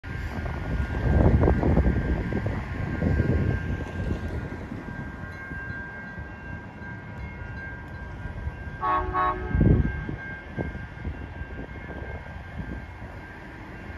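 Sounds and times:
wind gusting on microphone: 0.0s - 13.9s.

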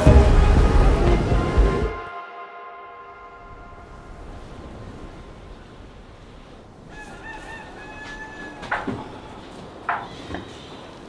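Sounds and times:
rooster crowing: 6.8s - 9.5s.

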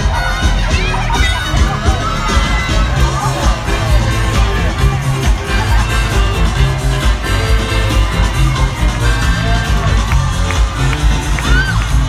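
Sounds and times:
crowd shouting and cheering: 0.0s - 12.0s
loud music with bass beat: 0.0s - 12.0s.

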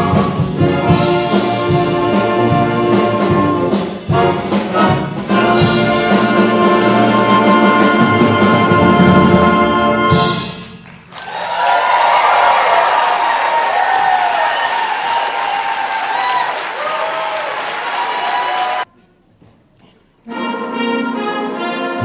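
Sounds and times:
concert band with brass: 0.0s - 18.9s, 20.2s - 22.0s
audience applauding: 10.6s - 18.9s.

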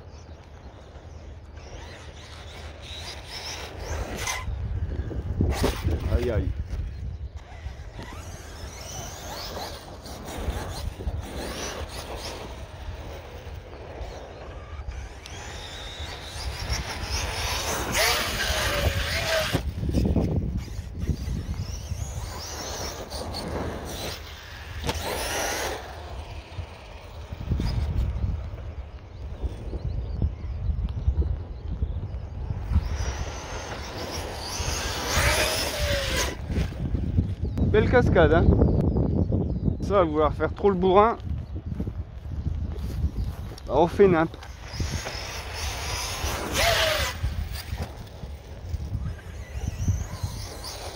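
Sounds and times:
low wind rumble on microphone: 0.0s - 50.9s
electric motor whining: 0.4s - 39.0s, 42.8s - 50.9s.

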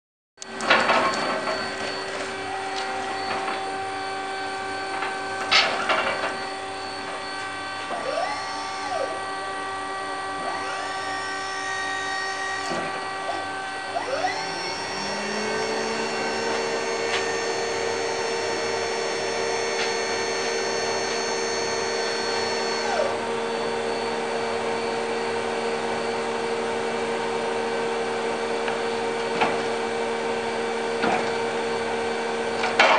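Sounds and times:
electric drive whine: 0.4s - 32.9s
higher tone: 1.0s - 25.0s.

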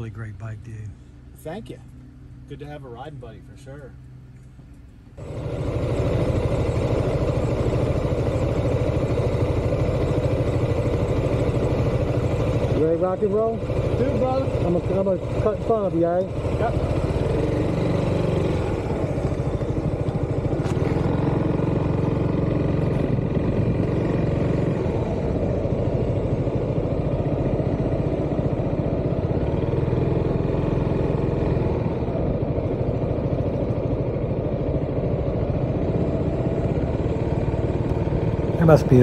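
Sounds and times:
scooter engine running: 5.2s - 39.0s.

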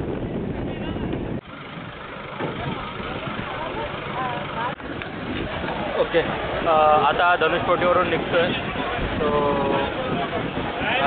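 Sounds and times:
people talking in background: 0.0s - 11.0s
steady noisy rumble: 0.0s - 11.0s.

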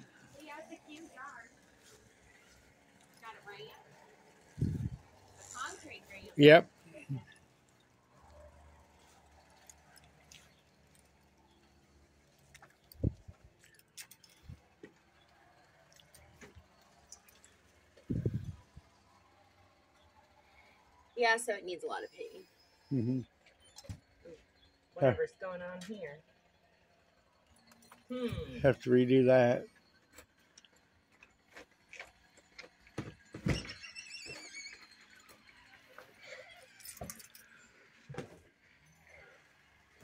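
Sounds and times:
door hinge squeaking: 33.4s - 35.0s.

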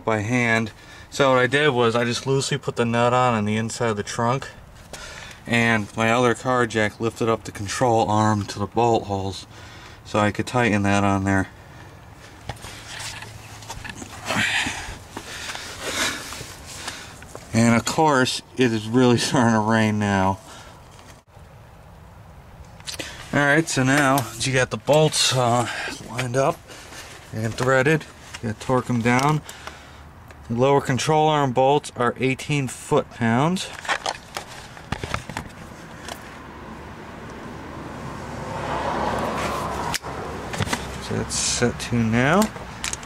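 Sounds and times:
scratchy handling rustle: 12.2s - 17.6s, 24.0s - 29.3s, 33.6s - 36.4s.

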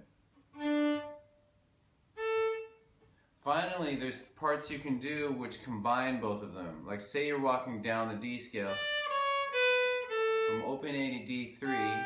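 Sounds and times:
bowed fiddle note: 11.6s - 12.0s.

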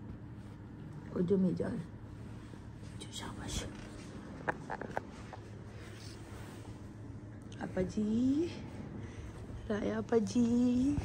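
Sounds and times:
person whispering: 3.0s - 3.9s.

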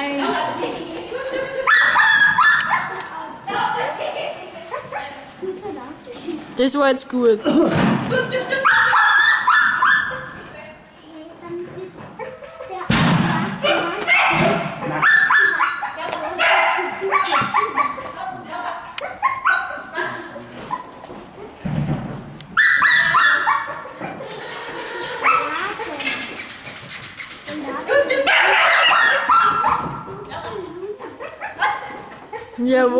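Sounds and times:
dog barking and yipping: 1.6s - 3.0s, 8.5s - 10.3s, 12.2s - 12.8s, 13.6s - 18.2s, 19.0s - 21.0s, 22.6s - 27.3s, 28.0s - 30.1s, 31.2s - 32.6s.

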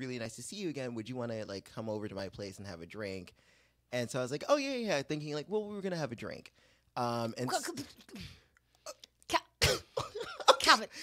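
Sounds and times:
man coughing: 7.6s - 9.0s, 9.6s - 11.0s.

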